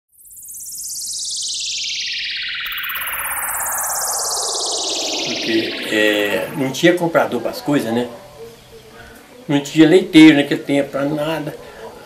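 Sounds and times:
synthesized falling sweep: 0:00.1 - 0:07.8.

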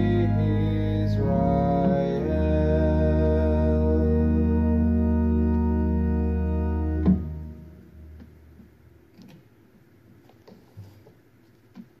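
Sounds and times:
low organ sound: 0:00.0 - 0:09.1
faint clicks and rustles: 0:10.1 - 0:12.0.

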